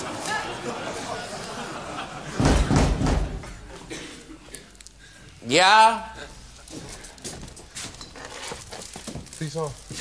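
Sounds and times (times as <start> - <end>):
door banging: 2.4 - 3.5.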